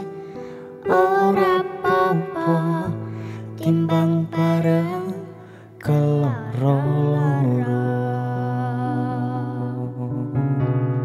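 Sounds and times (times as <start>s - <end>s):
man and girl singing: 0.8s - 10.6s.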